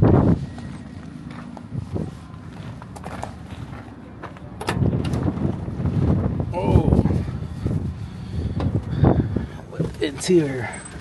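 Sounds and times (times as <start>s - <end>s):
footsteps on gravel: 0.0s - 4.6s.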